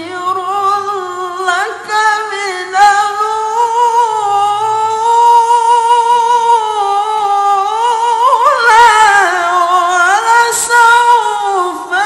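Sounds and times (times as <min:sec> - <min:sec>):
man reciting melodically: 0:00.0 - 0:12.0.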